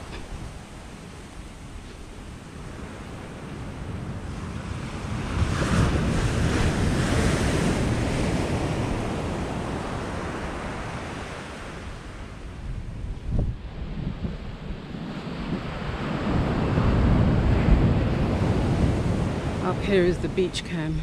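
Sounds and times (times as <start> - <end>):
surf breaking on beach: 0.0 - 20.0
wind rumbling on microphone: 0.0 - 21.0.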